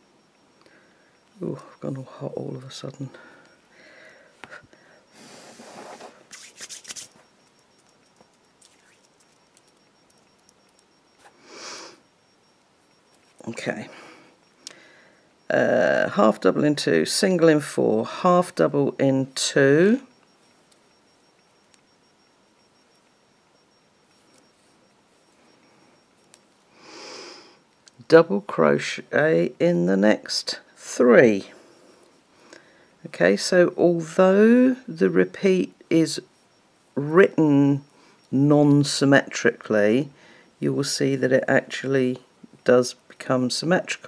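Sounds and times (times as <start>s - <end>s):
faint ticks: 6.9s - 15.5s, 20.1s - 26.8s, 27.4s - 28.0s.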